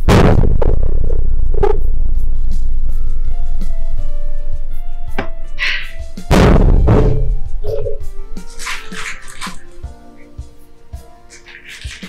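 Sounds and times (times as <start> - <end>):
soft background music: 1.2 - 12.0
plastic wrapper crinkling: 8.4 - 9.9, 11.3 - 12.0.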